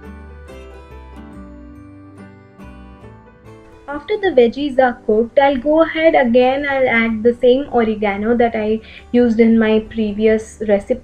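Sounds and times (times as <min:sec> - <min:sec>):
plucked guitar-like music: 0:00.0 - 0:04.4.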